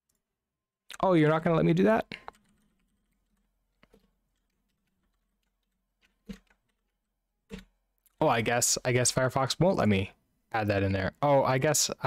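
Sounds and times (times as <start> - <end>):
computer keyboard keystrokes: 2.3 - 6.9.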